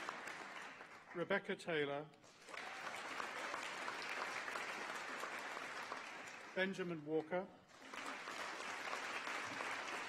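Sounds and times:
audience applause: 0.0s - 1.2s, 2.4s - 6.6s, 7.8s - 10.0s.

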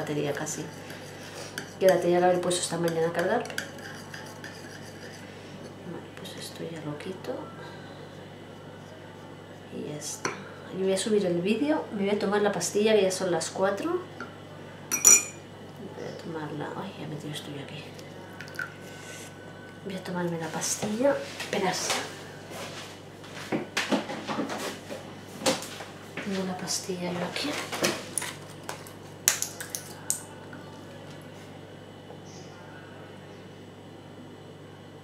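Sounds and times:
low steady hum: 0.0s - 35.0s
tableware clink: 14.9s - 15.4s.

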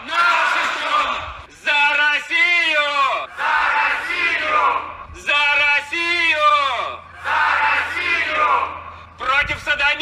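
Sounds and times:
crowd chanting: 0.0s - 1.4s, 3.2s - 5.1s, 6.8s - 8.9s.

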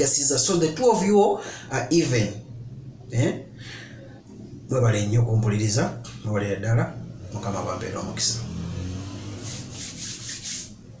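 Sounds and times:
low steady hum: 0.0s - 8.5s
scratchy rubbing strokes: 9.2s - 10.9s.

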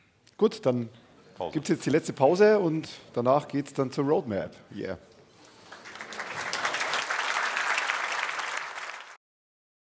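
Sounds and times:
audience applauding: 5.6s - 9.2s.

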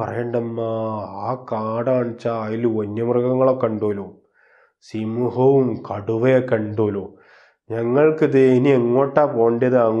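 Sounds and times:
man speaking in sing-song way: 0.0s - 4.1s, 4.9s - 7.1s, 7.7s - 10.0s.

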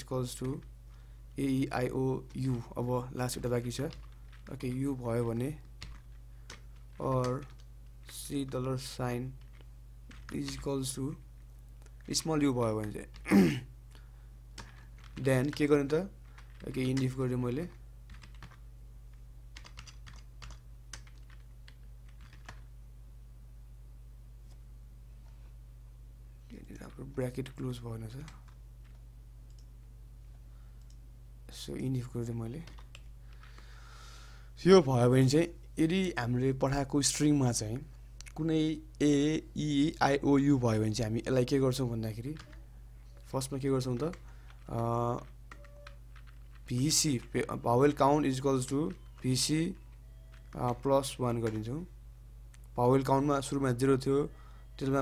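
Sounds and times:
low electrical hum: 0.0s - 55.0s
keyboard typing clicks: 5.8s - 8.7s, 9.4s - 10.7s, 14.6s - 18.6s, 19.6s - 22.7s, 28.2s - 29.7s, 43.2s - 51.7s.

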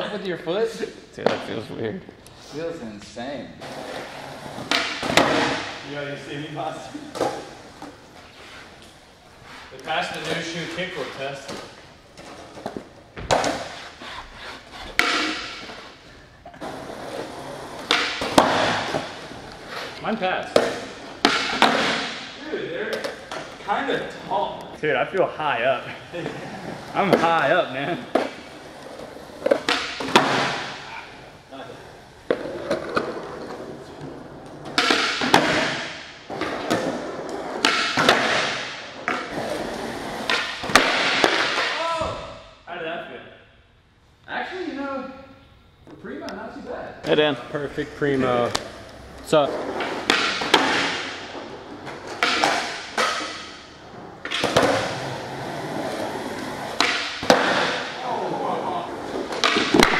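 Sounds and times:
skateboard wheels rolling: 3.6s - 5.6s, 16.6s - 20.0s, 31.2s - 35.7s, 36.3s - 38.4s, 39.0s - 41.5s, 53.8s - 59.9s
skateboard rolling on concrete: 16.6s - 20.0s, 39.0s - 40.3s, 53.8s - 56.8s
skateboard popping and landing: 59.0s - 59.9s.

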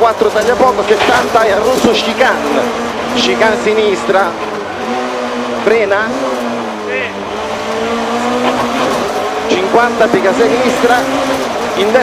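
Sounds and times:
rally car engine revving: 0.0s - 12.0s.

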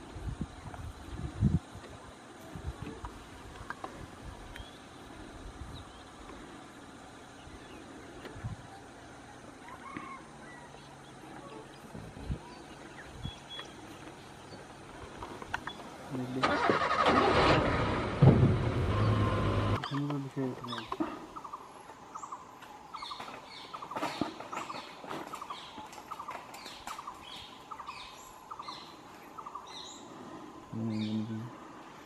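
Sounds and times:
birds chirping: 0.0s - 17.4s, 18.6s - 32.0s
vehicle engine running: 10.8s - 19.9s.

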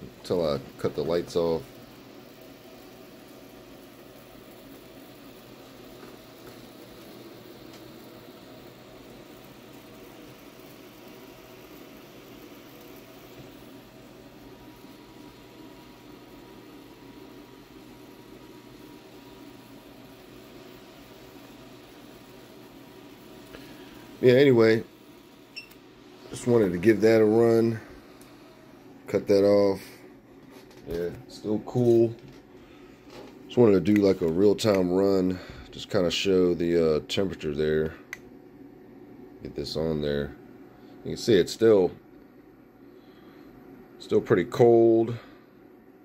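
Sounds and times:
tesla coil plasma sizzling: 0.0s - 30.0s
low steady hum: 0.0s - 46.0s.

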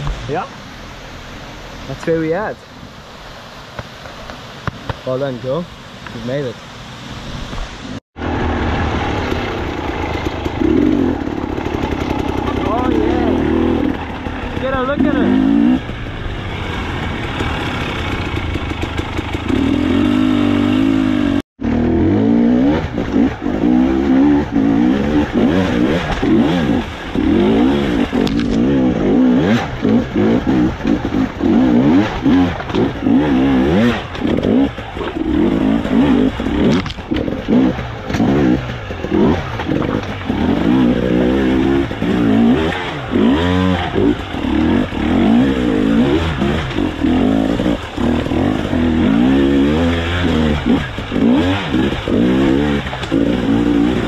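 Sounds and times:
off-road motorcycle engine revving: 8.2s - 54.0s.

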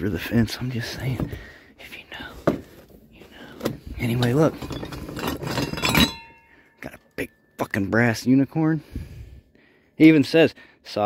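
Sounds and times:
glass ornaments clinking in box: 4.3s - 6.5s
sharp ringing clink: 5.5s - 6.7s.

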